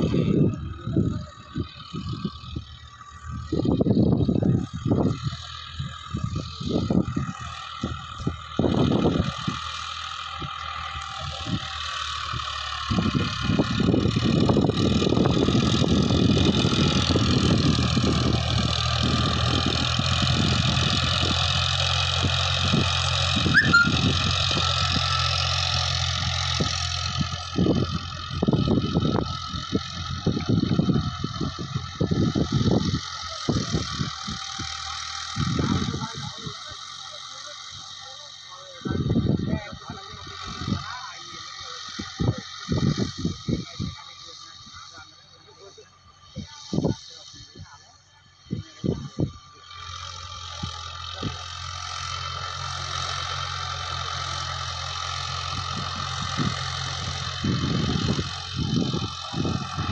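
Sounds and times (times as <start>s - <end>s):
wind noise on microphone: 0.0s - 2.7s, 3.3s - 9.6s, 12.9s - 21.4s, 27.5s - 34.4s, 35.4s - 36.5s, 42.0s - 43.9s, 46.4s - 47.7s, 48.5s - 49.4s, 55.6s - 59.9s
tractor diesel engine under load: 0.0s - 59.9s.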